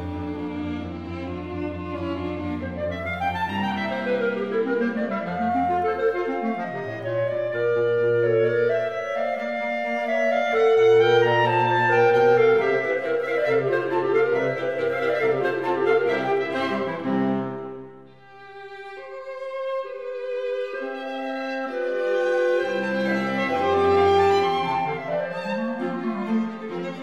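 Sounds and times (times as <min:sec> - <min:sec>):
clarinet and strings chamber music: 0:00.0 - 0:27.0.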